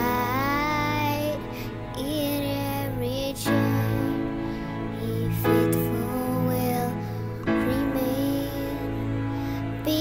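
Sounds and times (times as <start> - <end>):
girl singing a slow hymn: 0.0 - 10.0
soft instrumental backing: 0.0 - 10.0.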